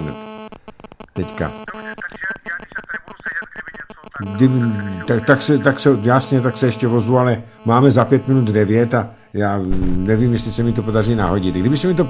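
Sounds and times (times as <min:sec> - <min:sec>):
faint voice over telephone: 0:01.2 - 0:05.8.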